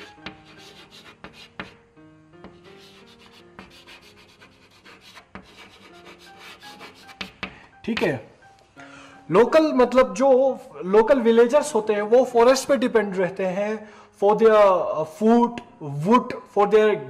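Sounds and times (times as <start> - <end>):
chalk scratching on blackboard: 0.0 - 1.8, 2.4 - 7.6
faint background music: 0.0 - 17.0.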